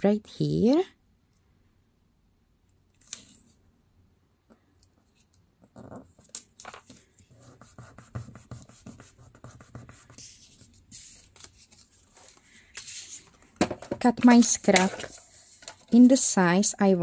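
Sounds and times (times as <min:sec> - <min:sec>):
paper rustling and crackling: 0:10.2 - 0:13.5.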